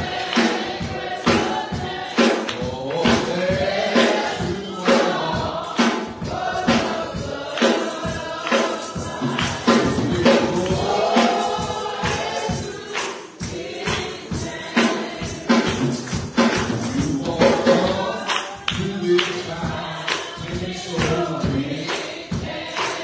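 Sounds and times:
people singing a gospel hymn: 0.0 - 23.0
tambourine beats: 0.0 - 23.0.

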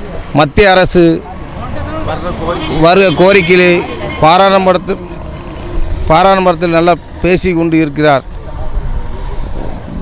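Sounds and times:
street background rumble and hiss: 0.0 - 10.0
man speaking: 0.3 - 5.3, 6.0 - 8.3.

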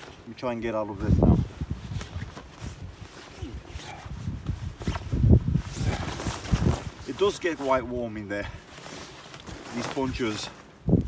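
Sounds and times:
fabric rustling and flapping: 0.0 - 11.0.

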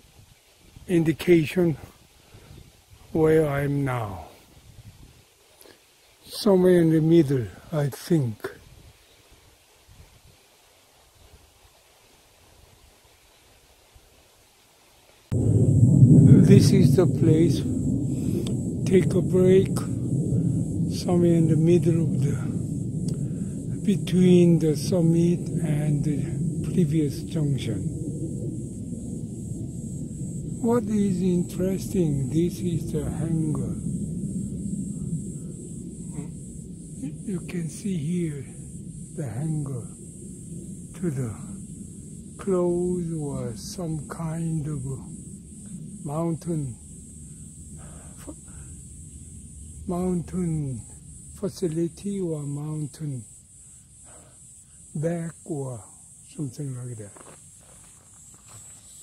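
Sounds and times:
high-pitched hiss: 0.0 - 59.0
low rumble: 15.3 - 54.0.

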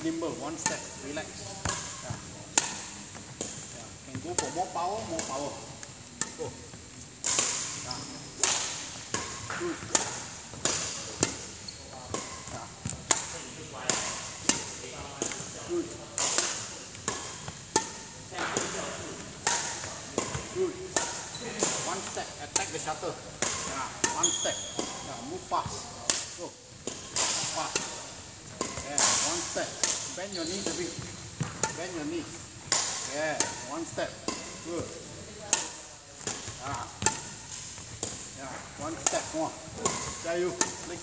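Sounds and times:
racket striking shuttlecock: 0.0 - 41.0.

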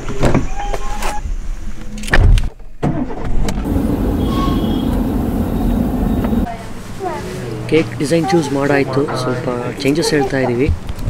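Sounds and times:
car engine and road noise: 3.0 - 10.2.

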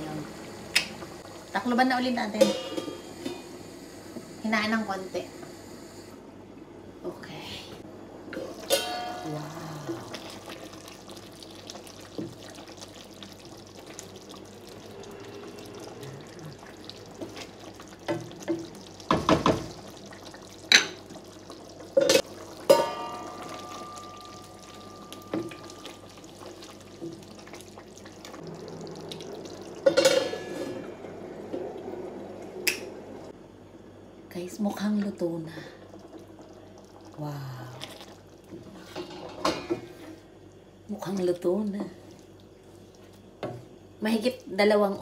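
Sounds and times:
low kitchen background: 0.0 - 45.0
metallic ring: 8.6 - 9.4.

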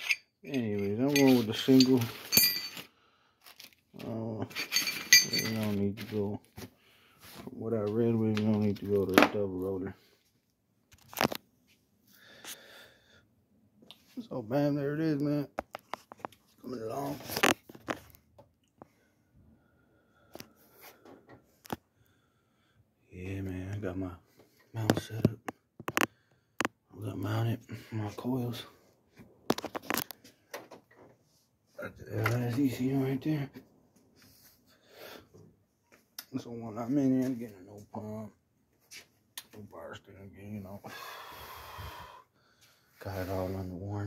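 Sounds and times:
metal parts clinking: 0.0 - 2.9, 4.5 - 5.8.

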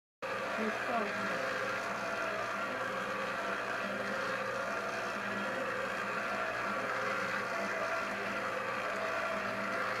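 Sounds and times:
stand mixer kneading dough: 0.2 - 10.0.

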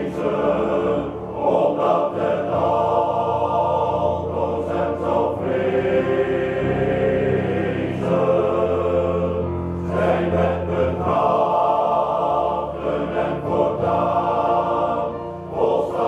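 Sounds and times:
male choir singing in harmony: 0.0 - 16.0.

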